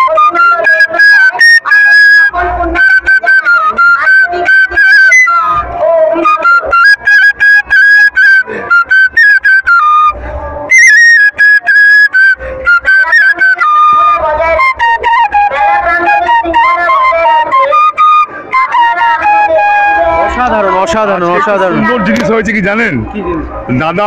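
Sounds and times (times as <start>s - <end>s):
flute melody: 0.0s - 23.6s.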